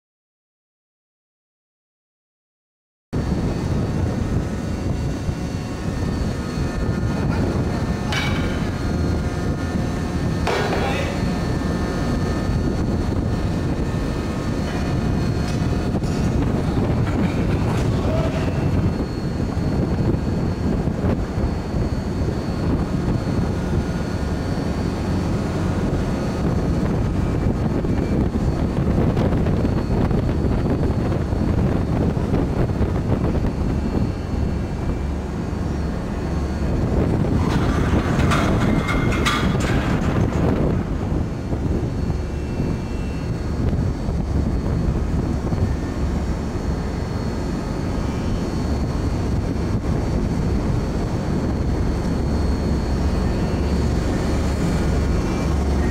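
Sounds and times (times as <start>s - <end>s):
deck machinery drone: 3.2s - 55.9s
metal clanks: 10.4s - 11.2s, 37.4s - 40.8s.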